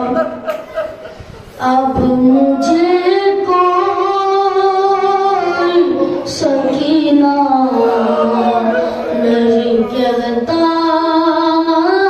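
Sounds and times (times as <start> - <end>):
boy chanting into microphone: 0.0 - 0.4, 1.6 - 12.0.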